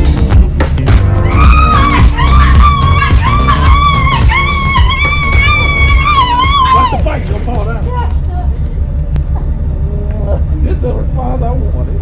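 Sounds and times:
faint voices talking: 6.4s - 12.0s.

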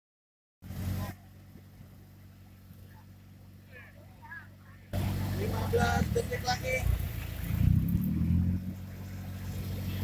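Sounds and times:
car engine idling: 0.6s - 10.0s.

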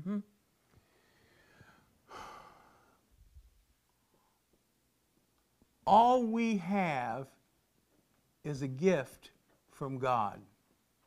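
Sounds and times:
faint sigh: 0.8s - 3.0s.

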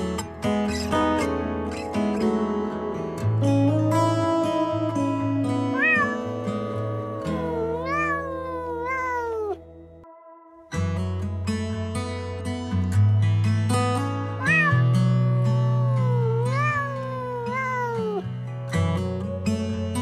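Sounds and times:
plucked guitar and bass music: 0.0s - 10.1s, 10.7s - 20.0s
cat meowing: 5.7s - 9.6s, 14.4s - 18.3s.

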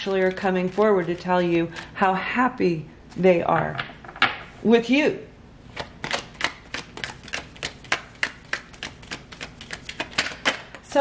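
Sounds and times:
cards being shuffled: 5.7s - 10.8s.

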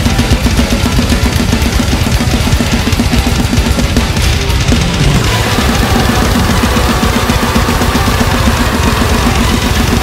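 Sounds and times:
fast double bass drum: 0.0s - 10.0s
heavy metal song: 0.0s - 10.0s.

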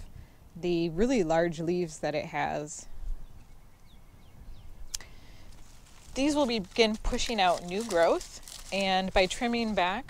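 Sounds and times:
pruners snipping leaf: 6.1s - 10.0s.

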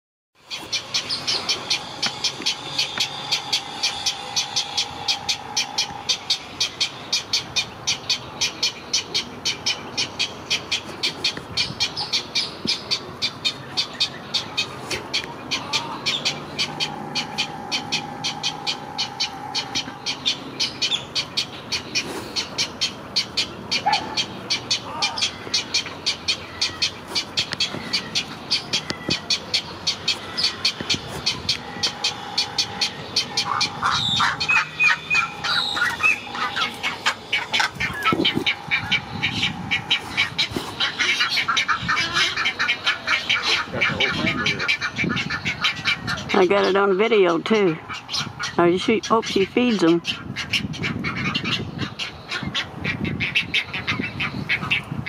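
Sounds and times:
chicks squawking: 0.4s - 55.0s
steady humming tone: 0.4s - 55.0s
bird chicks clicking calls: 0.5s - 54.9s.

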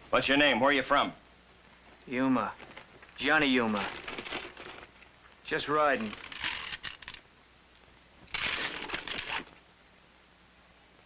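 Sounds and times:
rustling of leather bag: 3.7s - 5.0s.

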